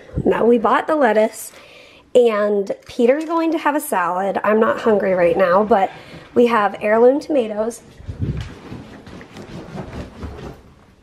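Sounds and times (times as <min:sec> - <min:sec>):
footsteps on hard floor: 0:07.8 - 0:11.0.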